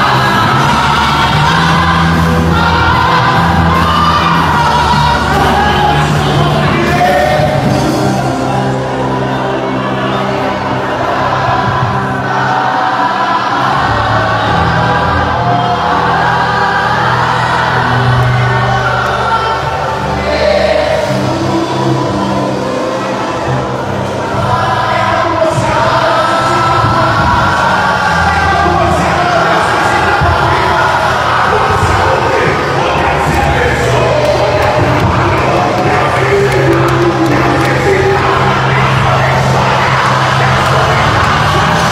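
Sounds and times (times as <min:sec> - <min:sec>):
choir singing together: 0:00.0 - 0:41.9
congregation singing: 0:00.0 - 0:41.9.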